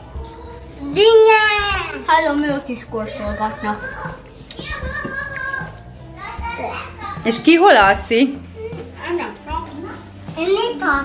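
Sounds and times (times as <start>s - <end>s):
music playing: 0.0s - 11.0s
young children chattering: 0.5s - 7.4s.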